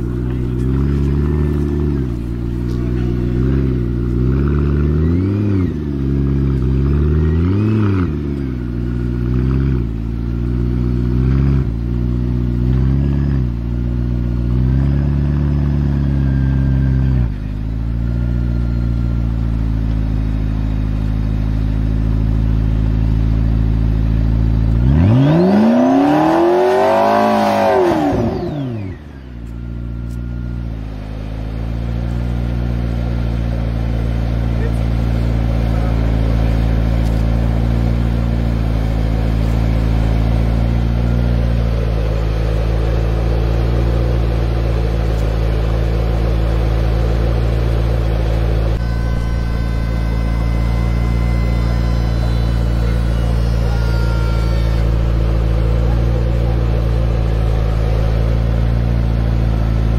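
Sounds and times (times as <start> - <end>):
car engine idling and revving: 0.0 - 59.9.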